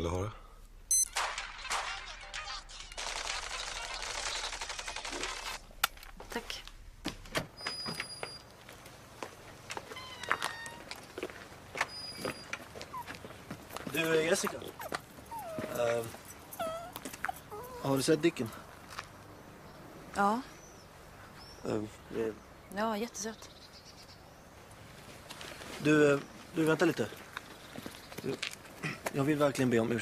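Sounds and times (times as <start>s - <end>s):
short high beeps: 0.9s - 1.1s.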